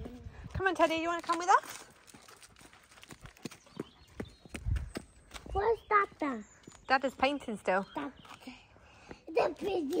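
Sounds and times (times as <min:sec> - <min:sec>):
footsteps on gravel: 0:00.0 - 0:07.2.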